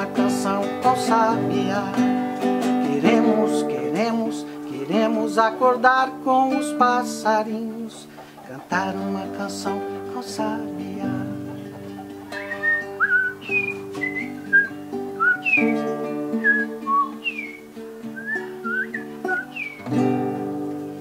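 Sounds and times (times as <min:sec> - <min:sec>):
classical guitar chords: 0:00.0 - 0:21.0
bird-like whistled phrases: 0:12.3 - 0:19.9.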